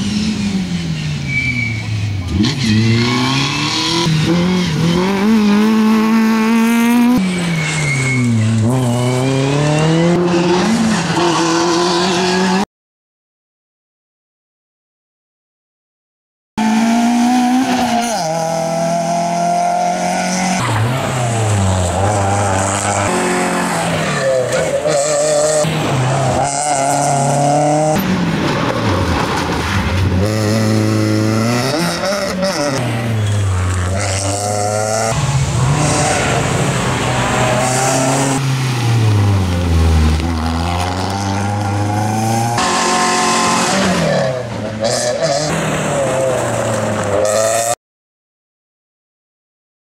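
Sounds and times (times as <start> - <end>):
rally car engine revving: 0.0 - 12.6, 16.6 - 47.8.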